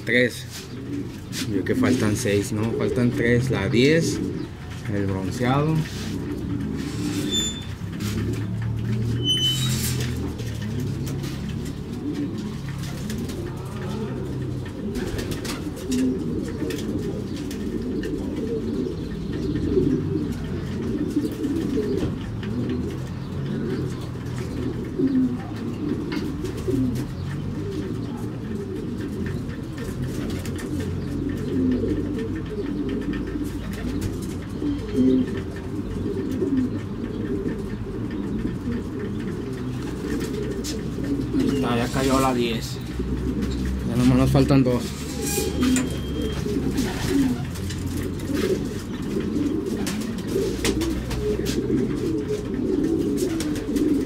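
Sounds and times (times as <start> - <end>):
pigeons cooing: 0.0 - 54.0.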